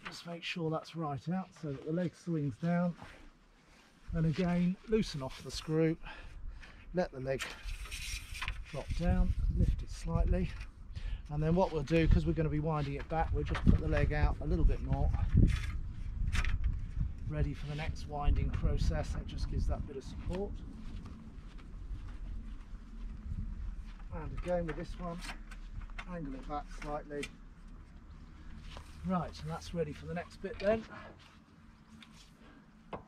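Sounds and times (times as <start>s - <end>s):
steady low hum: 0.8s - 33.0s
wind rumble on microphone: 7.6s - 26.0s.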